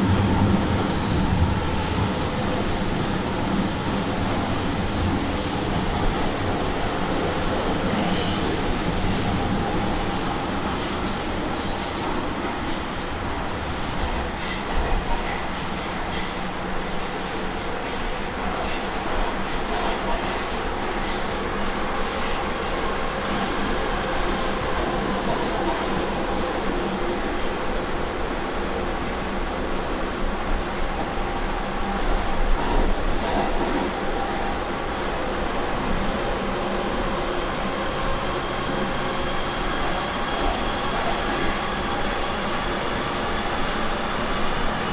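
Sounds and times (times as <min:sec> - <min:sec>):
metro train rumbling in tunnel: 0:00.0 - 0:44.9.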